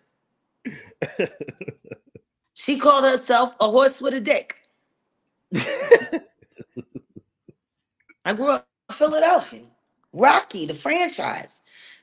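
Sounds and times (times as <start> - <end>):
person short vocal bursts: 0.7 - 2.1.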